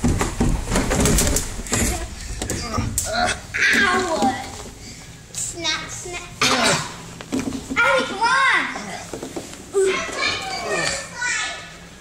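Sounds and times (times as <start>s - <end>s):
children calling out: 3.1s - 4.5s, 9.8s - 11.8s.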